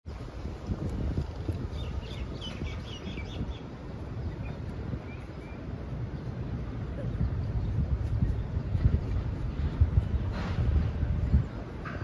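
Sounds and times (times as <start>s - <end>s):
wind noise on microphone: 0.0s - 12.0s
bird chirping: 1.7s - 6.6s.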